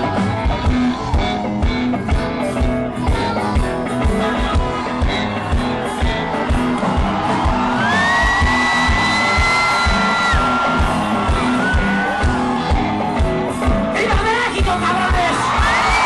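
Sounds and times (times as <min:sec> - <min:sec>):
rock band with orchestra: 0:00.0 - 0:16.0
steady drumbeat: 0:00.0 - 0:16.0.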